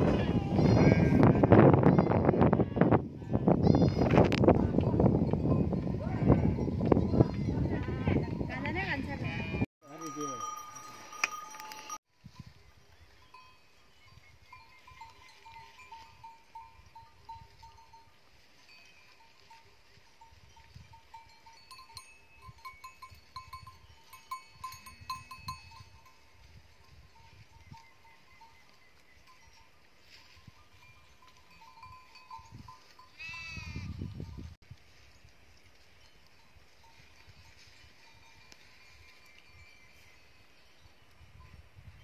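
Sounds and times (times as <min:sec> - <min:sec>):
sheep and goats bleating: 0:00.0 - 0:04.4, 0:06.0 - 0:08.2, 0:33.1 - 0:33.9
small bells clinking: 0:05.2 - 0:08.8, 0:09.8 - 0:34.5, 0:35.8 - 0:41.6.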